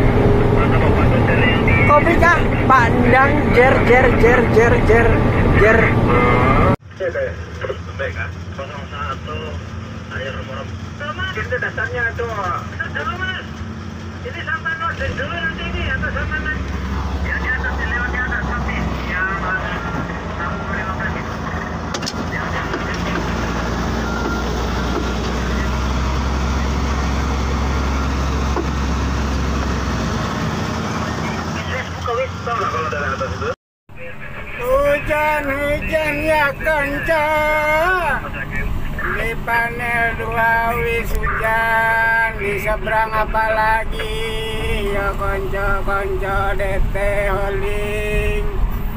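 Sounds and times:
diesel engine humming: 0.0 - 48.9
indistinct voices: 0.0 - 48.9.

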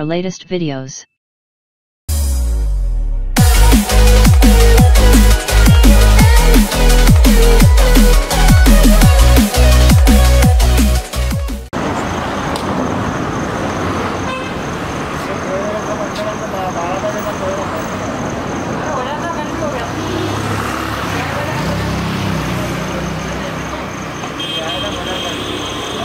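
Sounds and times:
people talking: 0.0 - 1.1, 15.2 - 17.9, 18.8 - 20.4
electronic intro music: 2.1 - 11.7
busy street traffic: 11.7 - 26.0
vehicle horns tooting: 14.2 - 14.7, 24.2 - 26.0.

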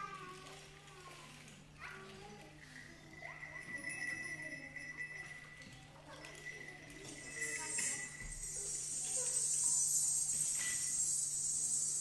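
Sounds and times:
metallic instrument ringing tone: 7.1 - 12.0.

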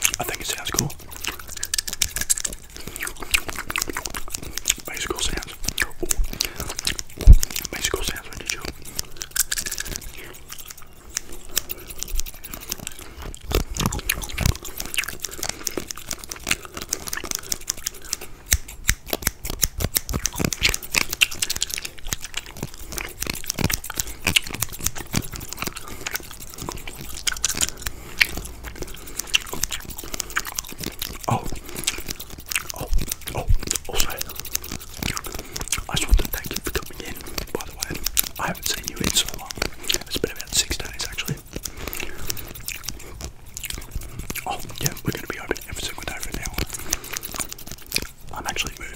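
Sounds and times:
comb and hands crackling on microphone: 0.0 - 48.9.

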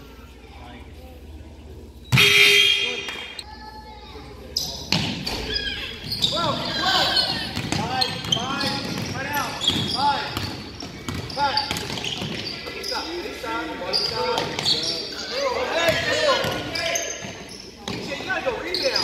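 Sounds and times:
sneakers squeaking: 1.6 - 3.4, 4.4 - 19.0.

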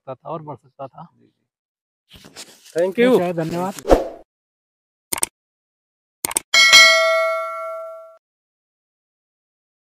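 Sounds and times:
notification bell ding: 6.6 - 8.2.

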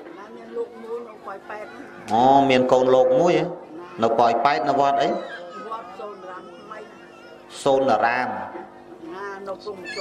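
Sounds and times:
man speaking animatedly: 2.1 - 5.3.

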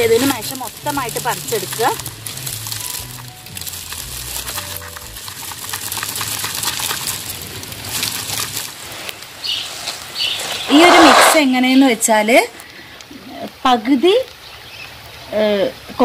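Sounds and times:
dry potting medium crackling: 0.0 - 16.0.

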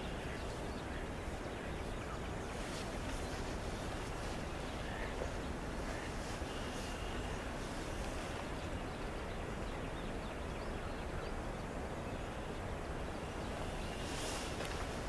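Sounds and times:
low rumble and hiss: 0.0 - 15.0.

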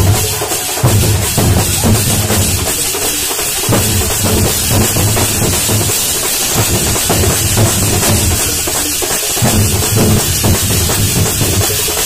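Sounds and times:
large drums beaten with sticks: 0.0 - 12.0
metallic shimmer: 0.0 - 12.0.

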